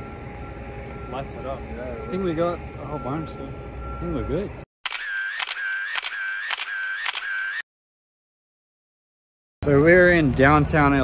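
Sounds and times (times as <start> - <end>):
camera shutter clicks with motor whir: 4.8 - 7.6.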